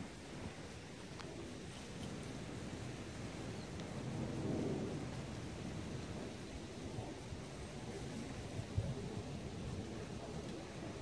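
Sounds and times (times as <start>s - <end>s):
low rumbling noise: 0.0s - 11.0s.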